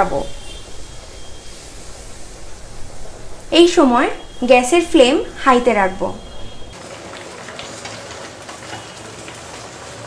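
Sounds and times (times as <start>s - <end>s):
paste frying in a wok: 6.7s - 10.0s
wooden spatula stirring: 6.9s - 10.0s.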